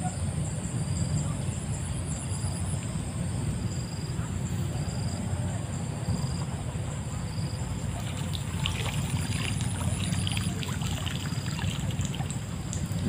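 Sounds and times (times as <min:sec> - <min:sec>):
water trickling and spattering: 0:07.7 - 0:13.0.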